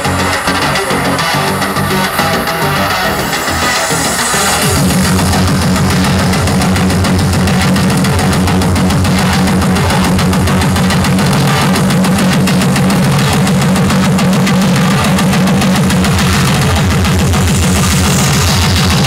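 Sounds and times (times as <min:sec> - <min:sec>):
trance dance music: 0:00.0 - 0:19.0.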